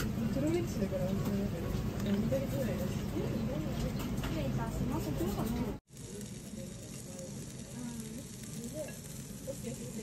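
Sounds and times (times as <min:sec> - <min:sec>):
beef sizzling on hot stone grill: 0:00.0 - 0:10.0.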